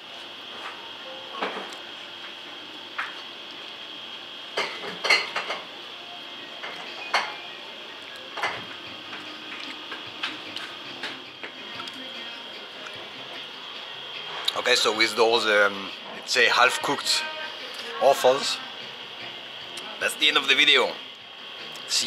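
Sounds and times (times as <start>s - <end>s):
steady high-pitched hum: 0.0s - 22.0s.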